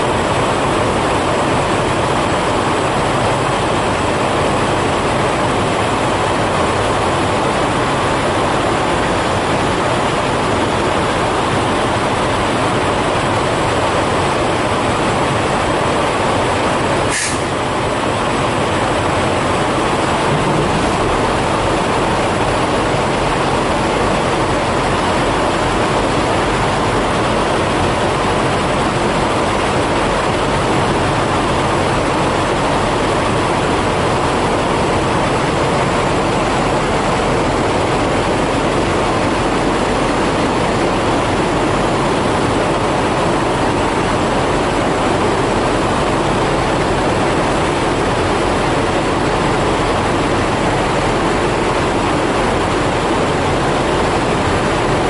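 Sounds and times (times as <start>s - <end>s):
diesel trucks idling: 0.0s - 55.0s.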